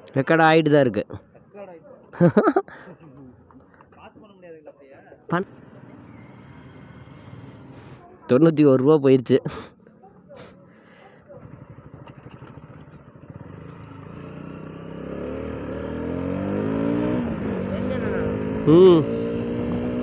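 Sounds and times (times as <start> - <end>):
motorcycle engine accelerating: 5.4 - 8.0, 10.1 - 20.0.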